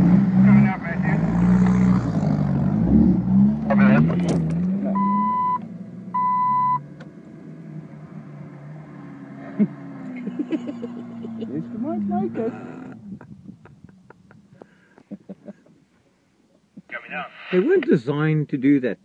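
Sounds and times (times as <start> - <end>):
vehicle engine running under load: 0.0 - 15.4
voices: 0.4 - 2.0, 3.6 - 5.3, 9.4 - 15.8, 16.5 - 19.0
short electronic beeps: 5.0 - 5.6, 6.2 - 6.8.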